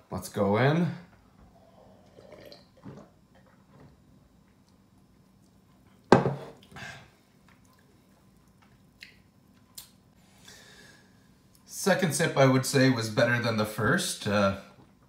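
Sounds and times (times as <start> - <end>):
throaty noise from drinker: 1.4 - 3.8
sipping and swallowing: 1.8 - 3.9
tankard set down on table: 6.1 - 6.5.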